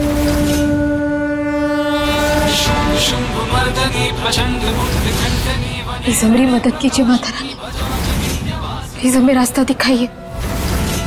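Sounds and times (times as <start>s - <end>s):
long held horn-like note: 0.0s - 5.0s.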